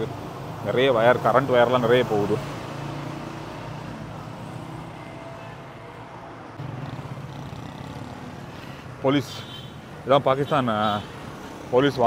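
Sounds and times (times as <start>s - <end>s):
passing cars and motorcycles: 0.0s - 12.0s.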